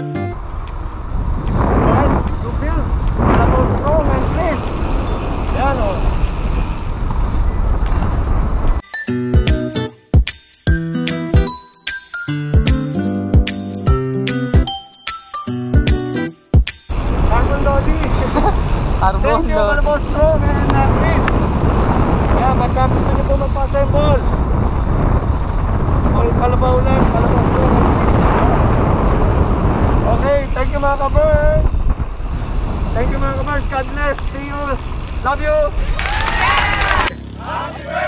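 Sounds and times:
rolling road noise: 0.0 - 8.8, 16.9 - 38.0
wind buffeting microphone: 0.4 - 8.8, 16.9 - 37.1
voices calling out: 35.7 - 38.0.

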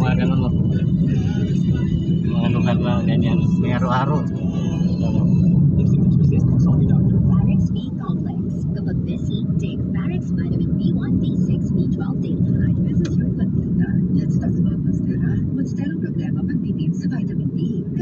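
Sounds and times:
car engine and tyre rumble: 0.0 - 18.0.

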